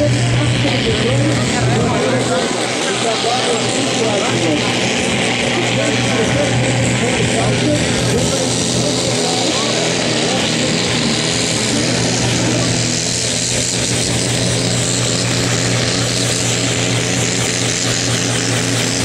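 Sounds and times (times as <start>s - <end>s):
tractor diesel engine at full throttle: 0.0s - 19.0s.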